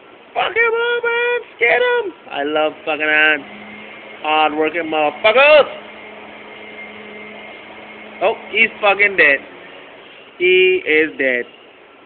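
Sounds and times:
faint constant hum: 0:00.0 - 0:12.0
steady background hiss: 0:00.0 - 0:12.0.

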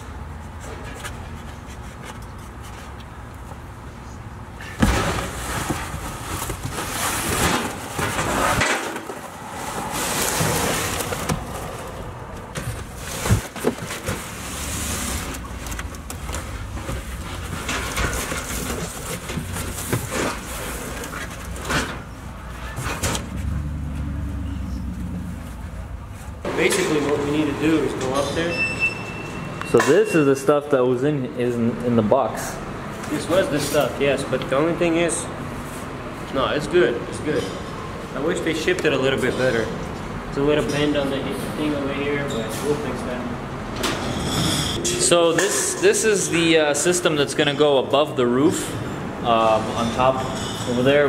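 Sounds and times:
low traffic hum: 0:00.0 - 0:51.0
cardboard boxes rustling and scraping: 0:04.6 - 0:23.5.

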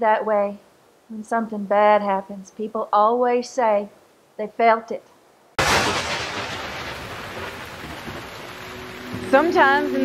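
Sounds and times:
rain hissing: 0:05.6 - 0:10.0
thunder rumbling: 0:05.6 - 0:10.0.

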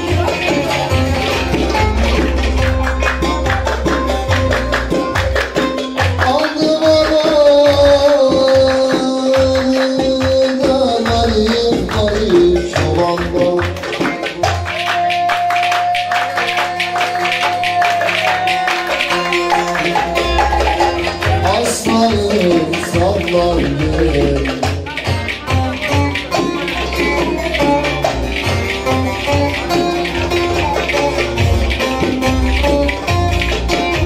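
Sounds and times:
folk dance music with saz: 0:00.0 - 0:34.0.

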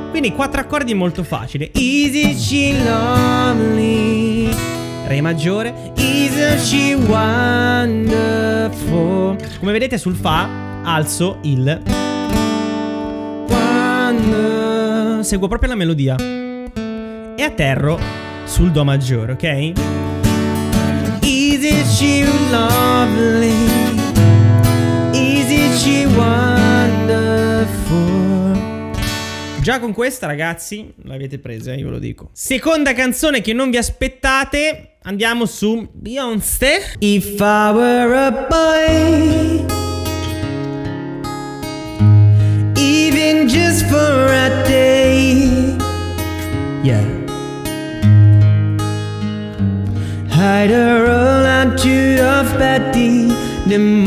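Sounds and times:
man singing: 0:00.0 - 0:11.8, 0:13.5 - 0:15.6, 0:21.0 - 0:28.9, 0:34.6 - 0:40.1, 0:42.4 - 0:47.4, 0:50.1 - 0:54.0
acoustic guitar strumming: 0:00.0 - 0:15.4, 0:16.2 - 0:29.7, 0:37.0 - 0:54.0.

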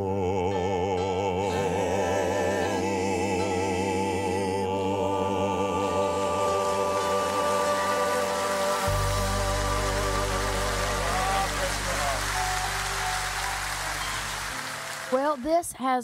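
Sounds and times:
gospel music accompaniment: 0:00.0 - 0:15.5
low bass note: 0:08.9 - 0:14.5.

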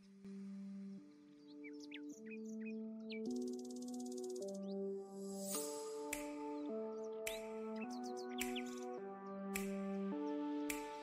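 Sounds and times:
soft background music with chords: 0:00.0 - 0:11.0
birdsong chirps and trill: 0:01.4 - 0:04.8.

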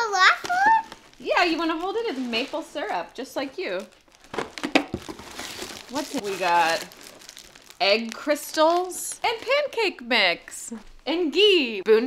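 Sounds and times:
plastic packaging crinkling: 0:00.0 - 0:09.9.

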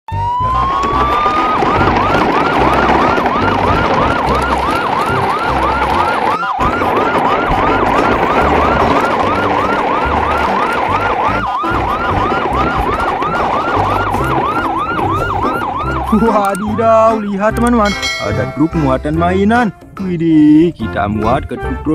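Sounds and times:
siren wailing and yelping: 0:00.1 - 0:17.8
loud noisy rumble: 0:00.8 - 0:16.1.

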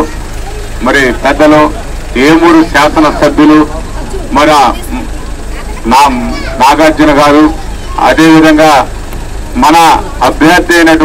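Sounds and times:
steady low hum: 0:00.0 - 0:11.0
man speaking into a microphone: 0:00.8 - 0:05.2, 0:05.8 - 0:11.0.

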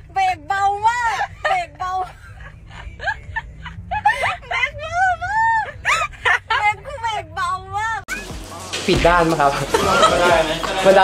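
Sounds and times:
woman giggling: 0:01.4 - 0:06.8.

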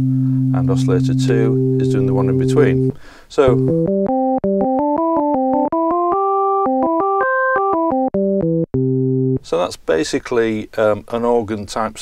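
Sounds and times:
synthesiser playing organ tone: 0:00.0 - 0:09.4.

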